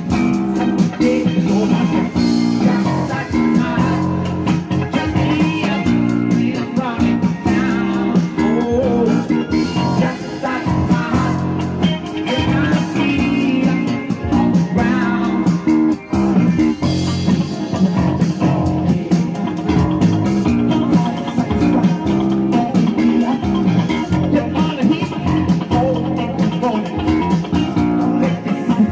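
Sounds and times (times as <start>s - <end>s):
bass guitar: 0.0s - 28.9s
drums: 0.0s - 28.9s
electric guitar lead: 0.0s - 28.9s.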